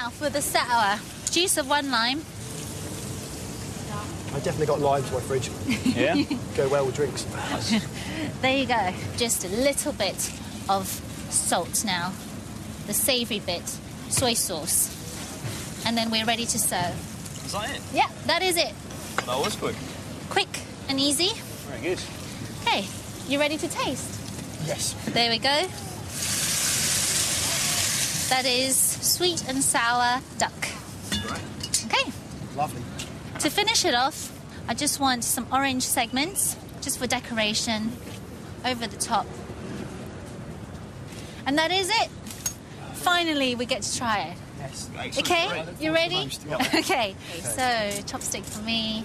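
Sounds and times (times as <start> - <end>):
food sizzling in a wok: 0.6 - 4.1, 26.1 - 29.2
stir-fry sizzling in a wok: 26.1 - 28.5.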